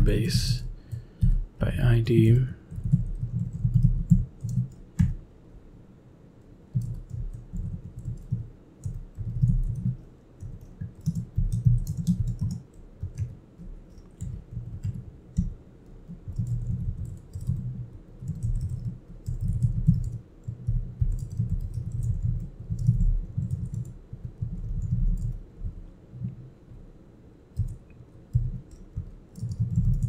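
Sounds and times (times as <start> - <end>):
typing on computer keyboard: 2.7 - 5.2, 6.7 - 26.3, 27.6 - 30.0.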